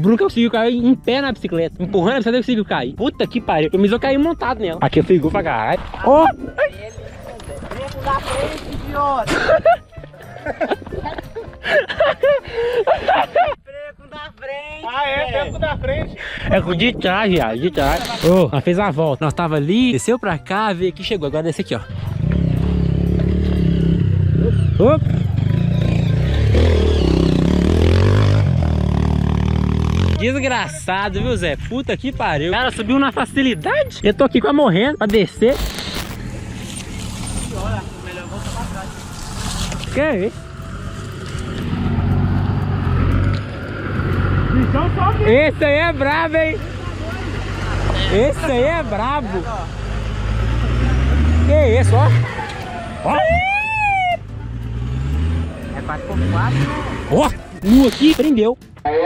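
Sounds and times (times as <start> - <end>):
dirt bike engine revving: 21.9 - 30.6, 49.7 - 53.4, 54.4 - 58.3.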